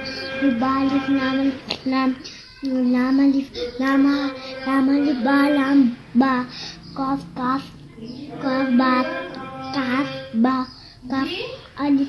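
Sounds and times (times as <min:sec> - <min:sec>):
girl chanting in sing-song: 0:00.0 - 0:12.0.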